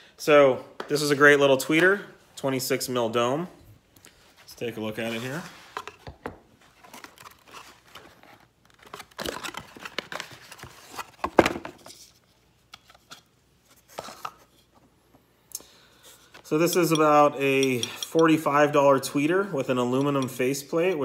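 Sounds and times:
cardboard packaging rustling and tearing: 0:06.6 - 0:11.9.

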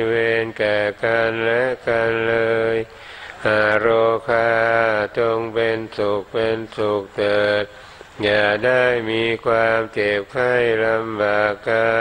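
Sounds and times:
man chanting in monotone: 0:00.0 - 0:12.0.

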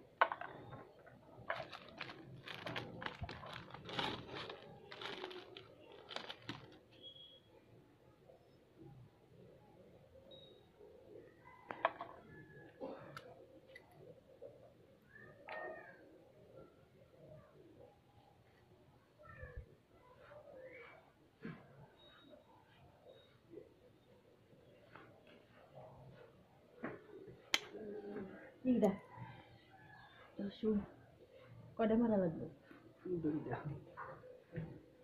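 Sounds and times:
packaging clicks and rustling: 0:01.4 - 0:07.0.

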